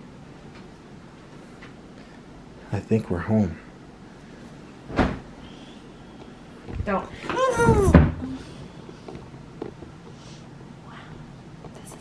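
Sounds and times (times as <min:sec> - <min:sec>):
body thumping onto mattress: 0:04.9 - 0:05.3.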